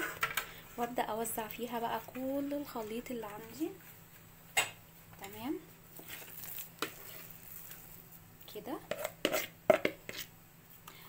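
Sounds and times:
soft scraping of batter: 5.9s - 8.2s, 8.8s - 10.4s.

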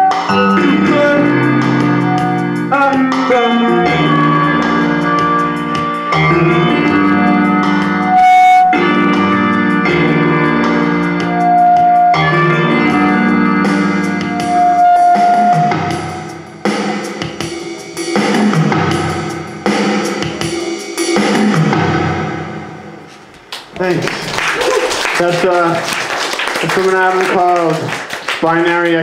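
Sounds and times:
electronic keyboard music with drums: 0.0s - 23.3s
man talking over microphone: 0.6s - 1.3s, 23.8s - 24.3s, 25.2s - 25.8s, 26.6s - 29.0s.

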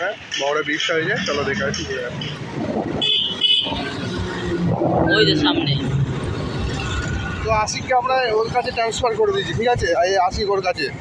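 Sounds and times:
road traffic rumble: 0.0s - 11.0s
vehicle horn beeping: 3.0s - 4.0s.

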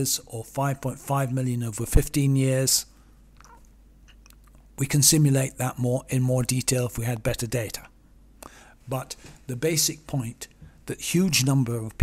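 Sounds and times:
man speaking: 0.0s - 2.9s, 4.8s - 8.0s, 8.9s - 12.0s
mouth clicks and lip smacks: 3.4s - 4.7s.

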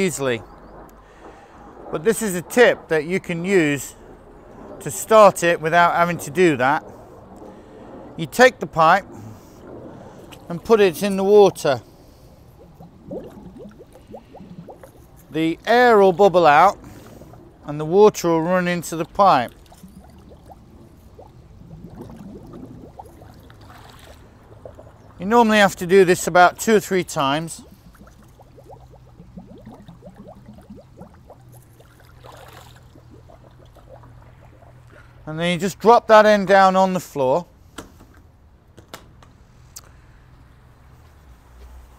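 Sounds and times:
splashy water rush: 0.0s - 35.4s
air bubbling from hose underwater: 0.4s - 35.2s.

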